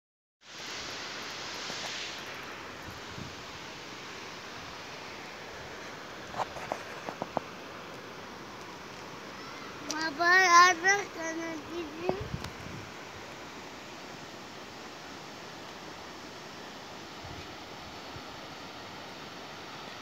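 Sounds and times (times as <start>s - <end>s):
wind on microphone: 2.8s - 3.5s, 11.7s - 13.0s
small child vocal sounds: 9.3s - 12.4s.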